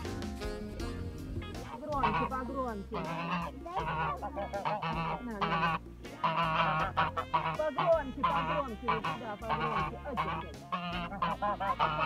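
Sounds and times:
geese honking: 0.0 - 12.0.

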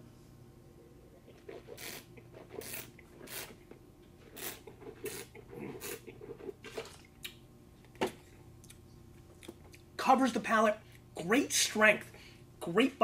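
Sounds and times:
person slurping wine: 1.2 - 3.6, 4.3 - 6.6.

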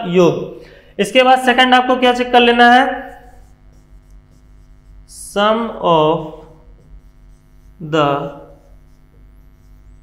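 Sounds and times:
electrical mains hum: 0.0 - 10.0
stylus scratching on screen: 1.2 - 10.0.

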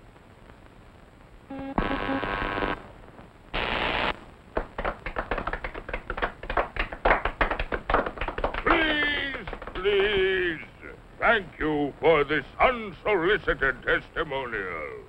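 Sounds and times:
crowd applause: 4.6 - 10.7.

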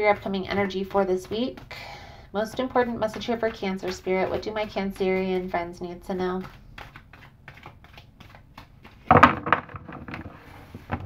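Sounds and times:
cards being shuffled: 2.5 - 11.0.

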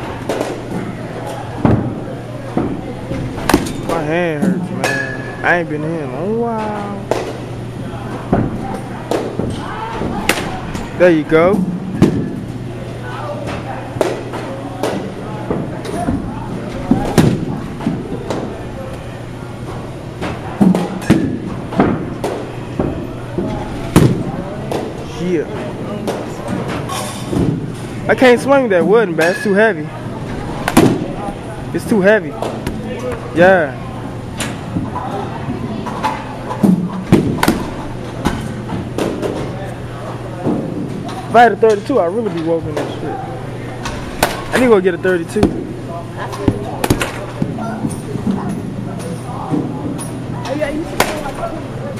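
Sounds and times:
faint voices: 0.0 - 51.9
steady low hum: 0.0 - 51.9
baseball bats cracking balls: 0.2 - 2.8, 3.4 - 5.4, 7.0 - 7.6, 8.2 - 10.8, 13.6 - 19.1, 30.6 - 31.3, 36.0 - 39.6, 43.8 - 50.2, 50.9 - 51.4.

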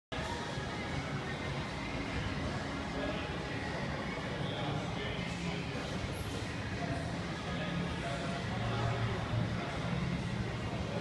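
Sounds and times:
faint indistinct voices: 0.2 - 11.0.

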